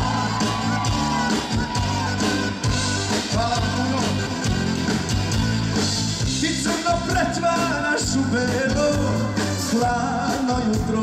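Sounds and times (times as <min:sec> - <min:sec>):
live pop-rock band playing: 0:00.0 - 0:11.0
man singing: 0:03.1 - 0:04.5, 0:06.2 - 0:11.0.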